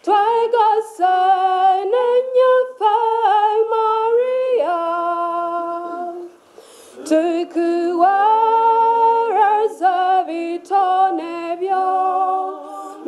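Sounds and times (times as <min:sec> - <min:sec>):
unaccompanied hymn singing: 0:00.0 - 0:13.0.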